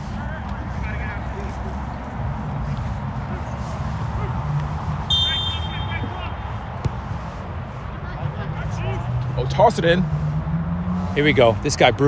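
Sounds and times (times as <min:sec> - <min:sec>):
referee's whistle: 0:05.1 - 0:06.2
distant shouts from players: 0:05.1 - 0:06.6.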